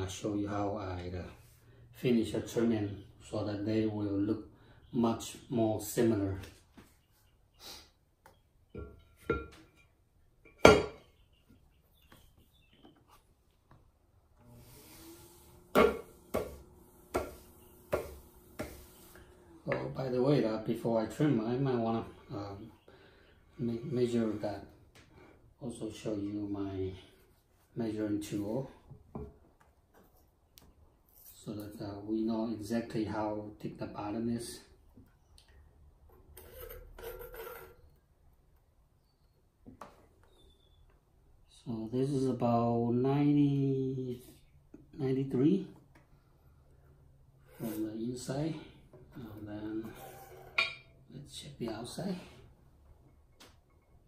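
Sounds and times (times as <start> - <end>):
potter's wheel motor hum: 14.4 - 20.0, 49.3 - 50.9
clay bowl knocking on wheel head: 15.7 - 18.8
soft scrape: 47.4 - 48.2, 49.2 - 50.6.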